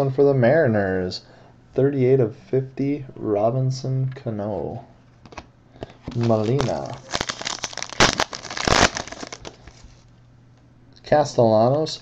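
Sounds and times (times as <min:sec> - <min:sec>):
foil wrapper crinkling: 0:06.1 - 0:10.0.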